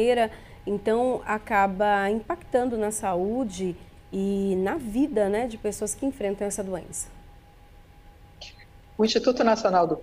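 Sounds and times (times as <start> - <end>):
faint thin hum: 0.0 - 10.0
low steady background hiss: 0.0 - 10.0.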